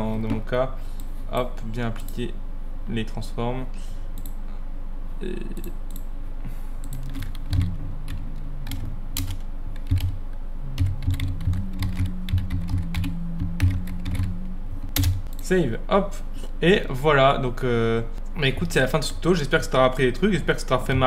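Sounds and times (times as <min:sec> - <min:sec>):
computer keyboard typing: 0:06.8 - 0:10.2, 0:10.8 - 0:14.3, 0:14.9 - 0:15.4.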